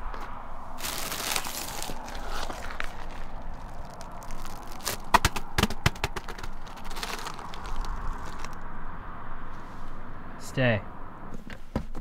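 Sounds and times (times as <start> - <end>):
steady background noise: 0.0 - 12.0
plastic crackling on crusty snow: 0.8 - 8.6.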